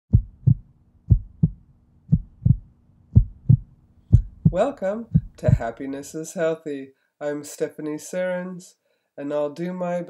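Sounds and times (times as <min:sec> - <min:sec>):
heartbeat thumps: 0:00.1 - 0:05.8.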